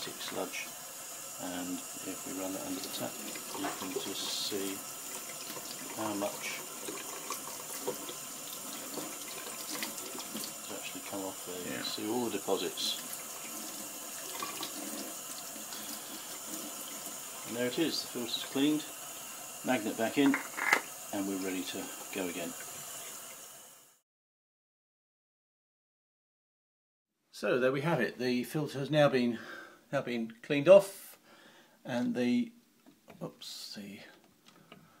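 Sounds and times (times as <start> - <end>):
tap water splashing into sink: 2.4 - 11.2, 12.3 - 17.6, 19.8 - 21.2
tap running into steel sink: 20.2 - 20.9.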